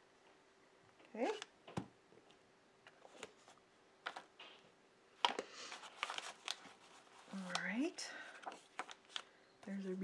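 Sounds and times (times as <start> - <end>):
paper pages rustling: 2.9 - 4.6, 5.2 - 9.4.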